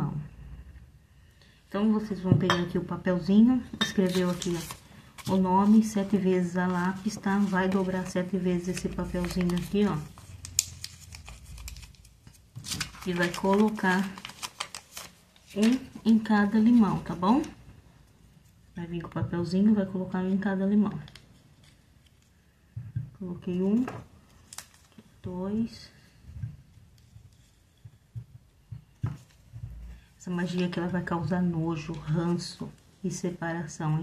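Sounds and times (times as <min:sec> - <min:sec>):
paper rustling and crinkling: 0:04.0 - 0:17.6, 0:21.0 - 0:22.3, 0:23.7 - 0:25.2.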